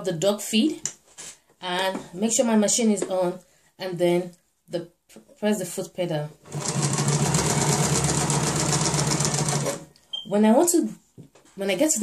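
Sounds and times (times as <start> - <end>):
sewing machine running: 6.4 - 9.9.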